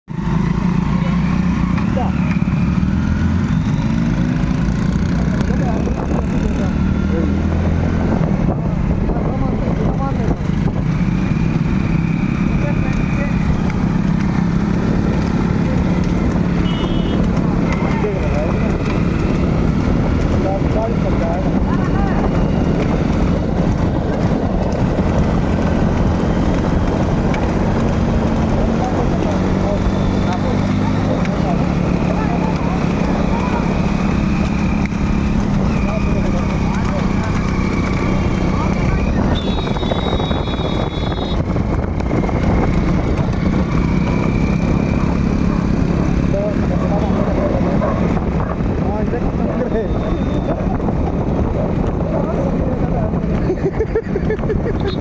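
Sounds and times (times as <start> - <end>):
motorcycle engine running: 0.1 - 55.0
heavy wind rush: 5.6 - 12.8, 17.2 - 55.0
indistinct voices: 11.6 - 41.5.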